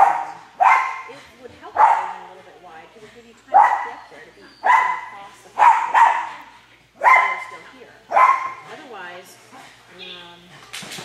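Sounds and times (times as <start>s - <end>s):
dog barking with echo: 0.0s - 1.1s, 4.6s - 6.4s, 7.0s - 7.5s, 8.1s - 8.6s.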